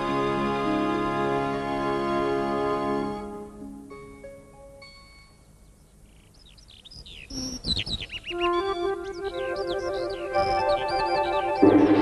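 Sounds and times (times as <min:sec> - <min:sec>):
music: 0:00.0 - 0:05.7, 0:08.3 - 0:12.0
birds chirping and twittering: 0:05.3 - 0:12.0.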